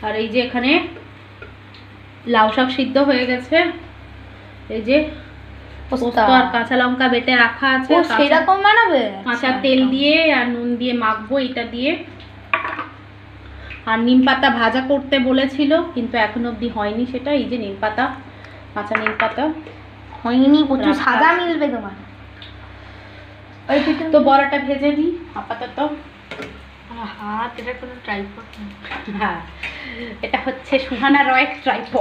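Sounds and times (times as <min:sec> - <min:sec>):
woman's voice: 0:00.0 - 0:01.0, 0:02.2 - 0:03.9, 0:04.7 - 0:05.3, 0:05.9 - 0:12.1, 0:13.8 - 0:18.2, 0:18.8 - 0:22.1, 0:23.7 - 0:26.1, 0:26.9 - 0:32.0
metal bowls knocking together: 0:12.5 - 0:13.0, 0:18.9 - 0:19.4.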